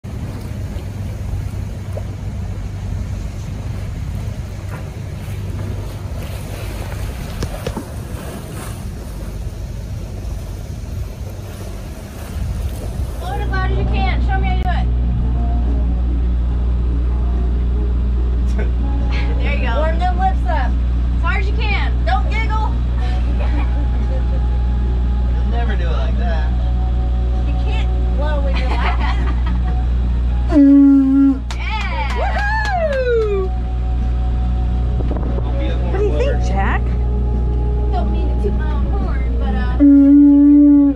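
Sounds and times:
wind on microphone: 0.0 - 16.9, 33.0 - 40.9
boat engine droning: 0.0 - 40.9
people talking: 13.2 - 14.9, 18.5 - 24.4, 27.4 - 29.2, 35.4 - 37.0, 37.9 - 40.6.

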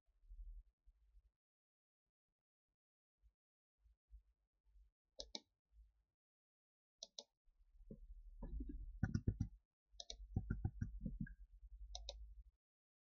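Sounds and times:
computer mouse clicking: 5.2 - 5.4, 9.0 - 11.3, 12.0 - 12.2
dull rapid taps: 8.4 - 9.5, 10.4 - 11.3.

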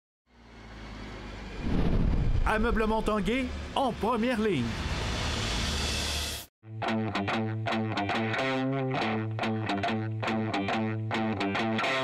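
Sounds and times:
whoosh and deep rumble: 1.5 - 3.7.

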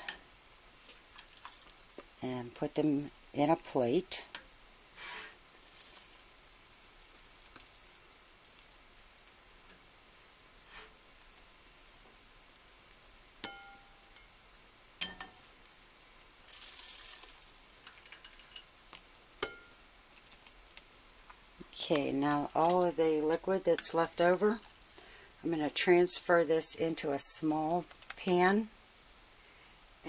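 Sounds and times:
spoon clinking on ceramic dishes: 19.4 - 19.7.

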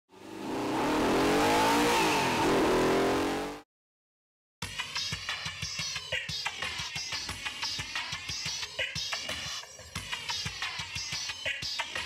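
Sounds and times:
car engine revving hard: 0.1 - 3.6.

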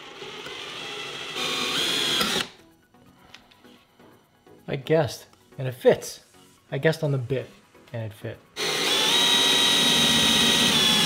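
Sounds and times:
cordless drill drilling into wood: 0.0 - 2.5, 8.6 - 11.0.

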